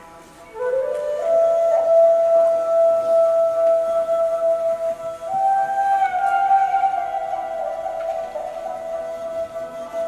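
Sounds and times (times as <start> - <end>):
bamboo flute long note: 0.0 - 10.0.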